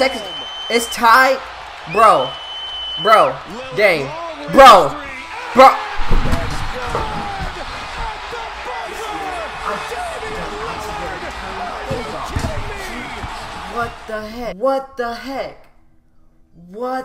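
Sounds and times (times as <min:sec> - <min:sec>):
crowd cheering and screaming: 0:00.0 - 0:14.2.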